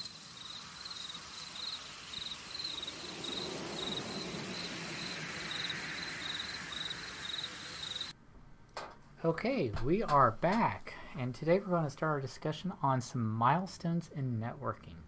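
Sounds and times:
cricket chirping: 0.0s - 8.1s
soft hiss: 0.0s - 14.3s.

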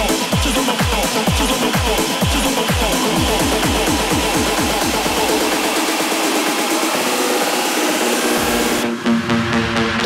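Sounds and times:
electronic dance music: 0.0s - 10.0s.

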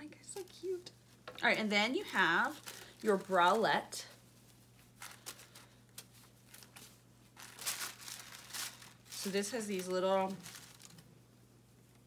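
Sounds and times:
packaging crinkling: 2.0s - 3.7s, 4.5s - 11.2s.

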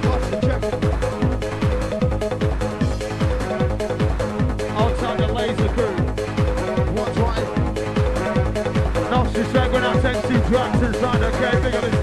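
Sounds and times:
electronic dance music: 0.0s - 12.0s
fast kick-drum beat: 0.0s - 12.0s.

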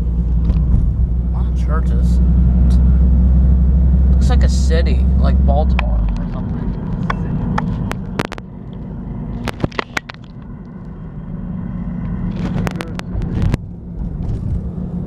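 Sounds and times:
engine and road rumble: 0.0s - 15.0s
sharp clicks and knocks: 5.7s - 11.0s, 12.0s - 14.6s.

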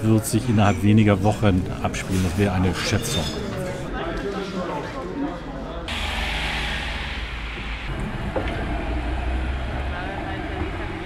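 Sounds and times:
low rumble of vehicles: 5.9s - 11.0s.

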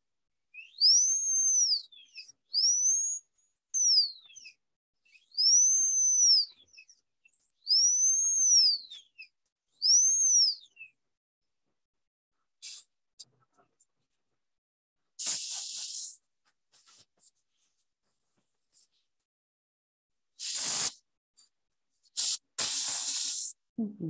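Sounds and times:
hiss of air and spray: 15.2s - 16.1s, 20.4s - 21.0s, 22.2s - 23.6s.

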